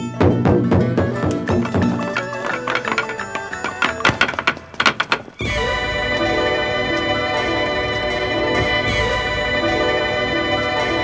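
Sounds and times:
wooden staves striking floor: 0:00.2 - 0:05.5.

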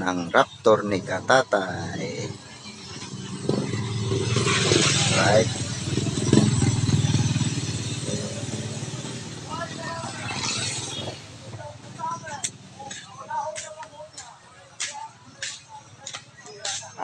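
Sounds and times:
motorcycle engine passing: 0:00.8 - 0:13.5.

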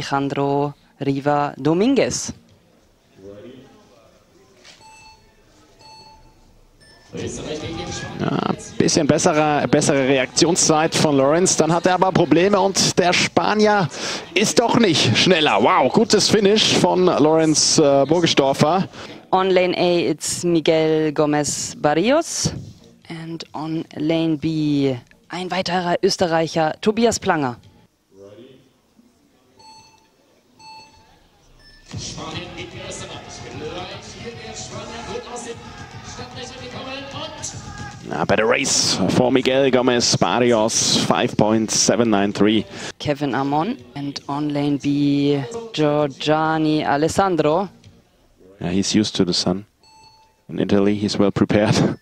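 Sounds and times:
electronic countdown beeps: 0:04.8 - 0:07.4, 0:29.6 - 0:32.5, 0:49.8 - 0:50.4, 0:51.7 - 0:52.0
short higher beep: 0:49.8 - 0:50.4.

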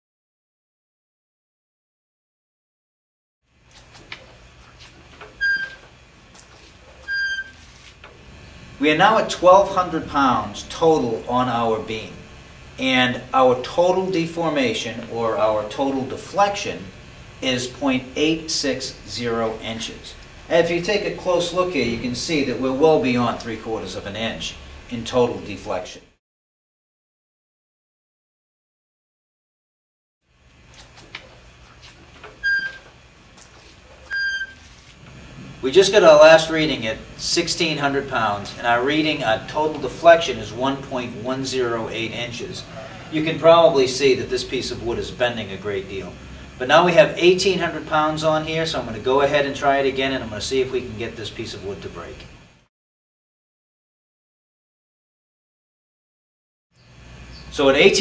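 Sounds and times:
loading wheel squeaking: 0:03.8 - 0:08.0, 0:31.1 - 0:33.0, 0:33.6 - 0:34.8
handwheel squeaking: 0:05.2 - 0:05.8, 0:06.9 - 0:07.6, 0:32.2 - 0:32.9.

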